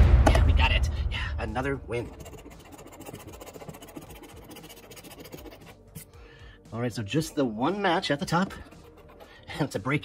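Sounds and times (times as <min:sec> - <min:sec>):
coin scraping scratch-off ticket: 0:02.0 - 0:06.1, 0:08.5 - 0:09.3.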